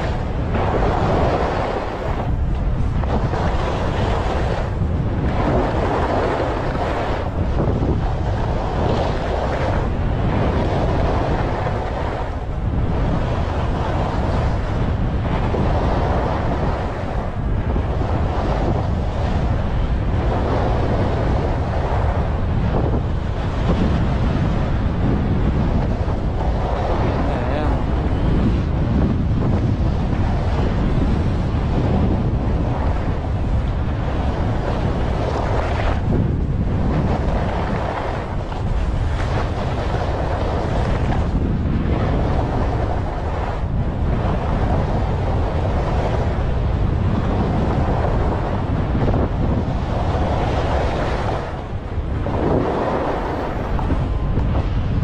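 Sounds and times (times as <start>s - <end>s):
wind rushing over microphone: 0.0s - 55.0s.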